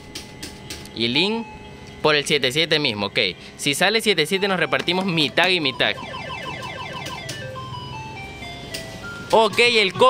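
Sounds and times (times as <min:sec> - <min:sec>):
slot machine falling beeps: 0:05.6 - 0:10.0.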